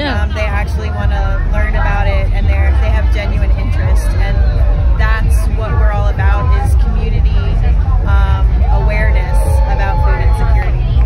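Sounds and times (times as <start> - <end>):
woman talking: 0.0 - 0.8.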